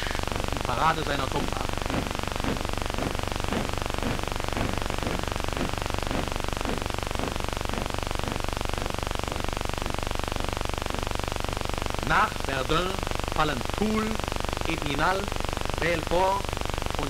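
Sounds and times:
film soundtrack hiss: 0.0s - 17.0s
faint regular strokes: 0.2s - 9.5s.

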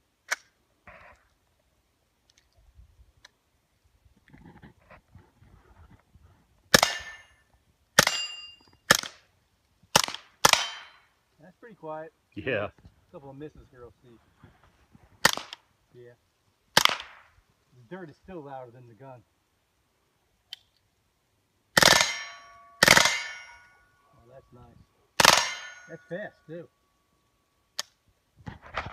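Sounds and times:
suppressed rifle shots: 6.7s - 7.2s, 8.0s - 9.2s, 9.9s - 11.0s, 15.2s - 15.6s, 16.8s - 17.3s, 21.8s - 23.6s, 25.2s - 26.0s
metallic ring of steel targets: 6.8s - 7.4s, 8.0s - 8.8s, 10.5s - 11.1s, 21.8s - 24.1s, 25.2s - 26.6s.

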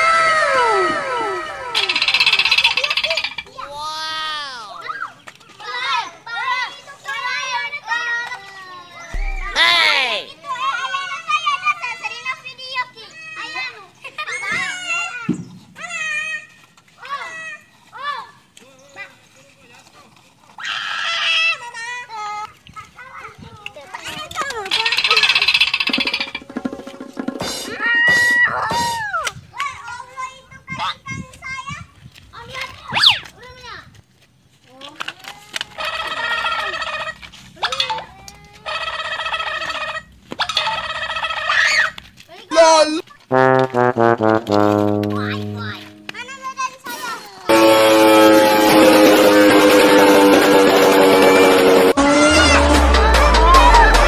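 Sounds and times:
loud music: 9.2s - 10.2s, 47.5s - 54.0s
tone falling step by step: 9.2s - 10.2s, 43.3s - 46.6s, 47.5s - 54.0s
cartoon sound effects: 9.2s - 10.3s, 43.3s - 46.6s, 47.5s - 54.0s
children's voices: 51.0s - 54.0s.

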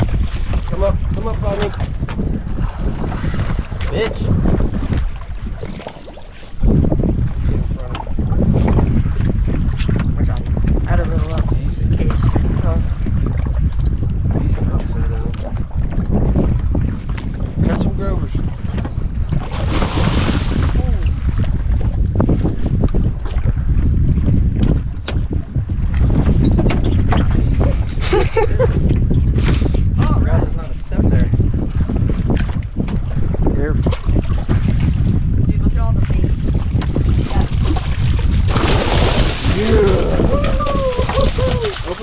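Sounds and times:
wind rumbling on microphone: 0.0s - 42.0s.

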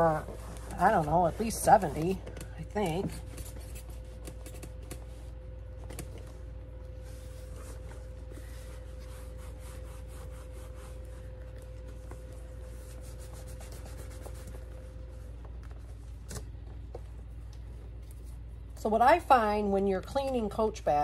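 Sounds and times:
faint steady hum: 0.0s - 21.0s
cloth rubbing leather: 6.9s - 16.0s.

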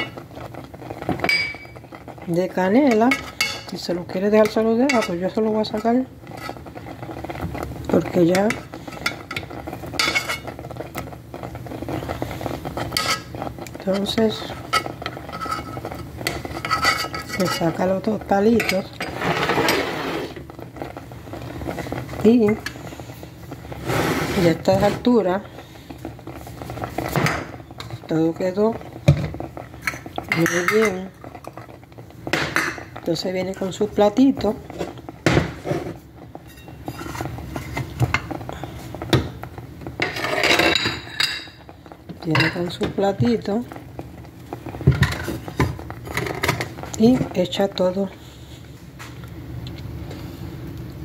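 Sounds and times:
utensils clinking against pot: 1.1s - 2.1s, 2.9s - 6.6s, 8.3s - 10.6s, 12.7s - 17.9s, 18.5s - 20.0s, 29.8s - 31.4s, 36.4s - 38.4s, 40.0s - 43.5s
spoon scraping metal pot: 4.4s - 6.7s, 12.7s - 17.9s, 18.5s - 20.4s, 36.5s - 37.9s.

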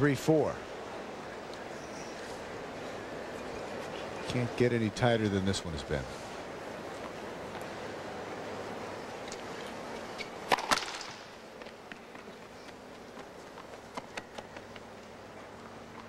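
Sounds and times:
background hiss: 0.0s - 16.0s
tennis ball struck: 10.5s - 11.2s.

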